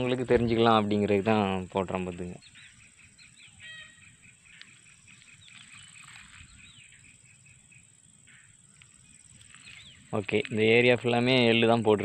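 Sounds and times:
faint birds chirping: 0.0 - 12.0.

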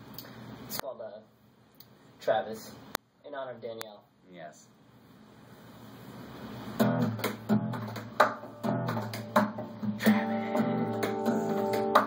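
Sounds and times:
acoustic guitar strummed: 6.8 - 12.0.

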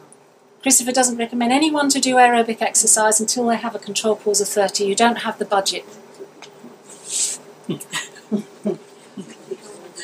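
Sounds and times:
faint steady hum: 0.0 - 10.0
woman laughing softly: 7.7 - 10.0.

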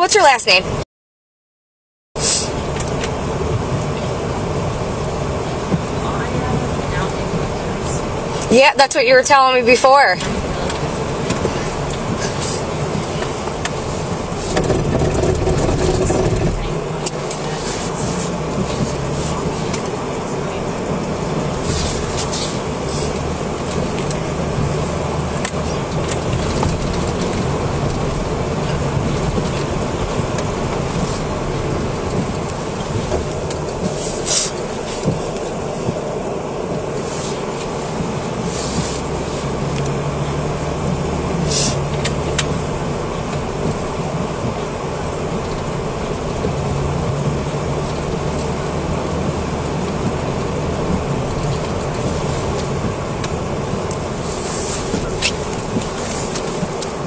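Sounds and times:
car engine and road rumble: 0.0 - 0.8, 2.2 - 57.0.

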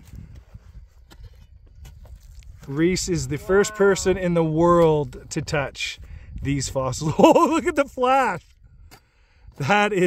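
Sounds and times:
rocks clicking and knocking: 0.0 - 2.8.

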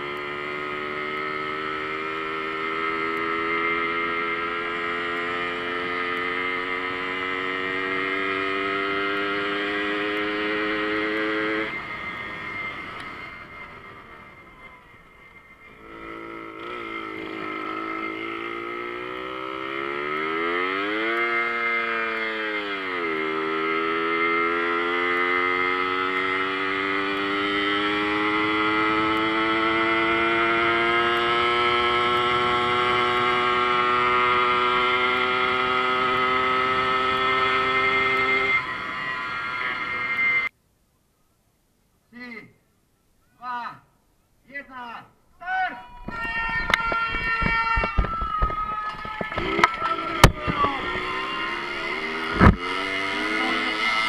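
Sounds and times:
moped engine buzzing: 0.0 - 40.5, 45.9 - 54.0.

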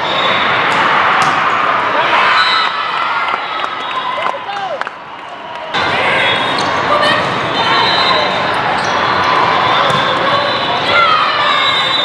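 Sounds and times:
balls bouncing and being hit: 0.7 - 1.5, 9.8 - 10.4.

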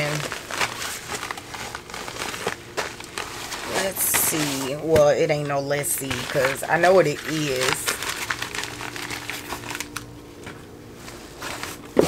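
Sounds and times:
plastic mailer crinkling: 0.0 - 10.6.

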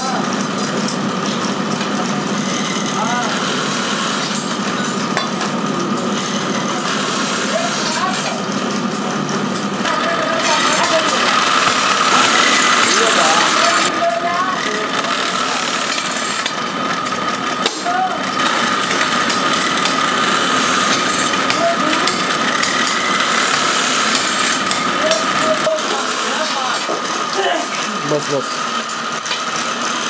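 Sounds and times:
drill press motor whine: 0.0 - 30.0
drill bit drilling through aluminium: 9.8 - 30.0.

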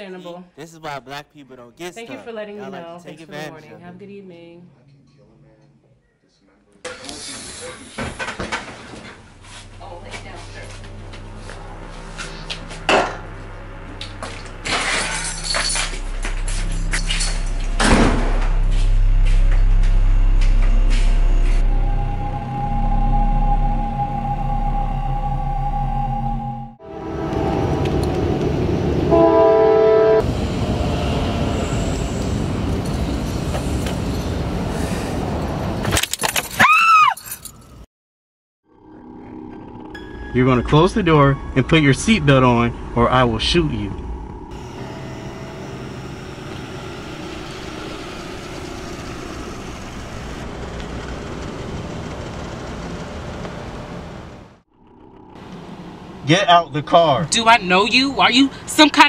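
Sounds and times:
low rumble: 9.1 - 29.2, 38.8 - 56.3
loud horn blast: 20.9 - 30.3
car rumble and hiss: 42.6 - 54.5.

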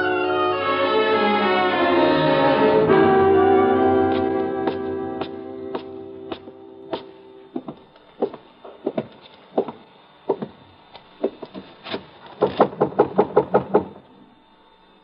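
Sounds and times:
footsteps: 4.1 - 12.0
rapid knocking on a door: 7.6 - 10.6, 11.2 - 11.6, 12.4 - 14.0.

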